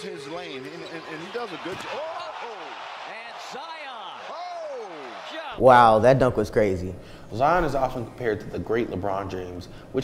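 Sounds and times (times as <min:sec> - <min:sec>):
arena crowd noise: 0:00.0 - 0:06.0.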